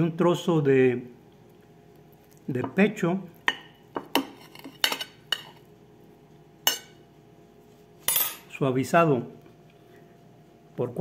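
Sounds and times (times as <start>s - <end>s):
fork clinking on ceramic plate: 3.5s - 5.6s, 6.7s - 7.0s.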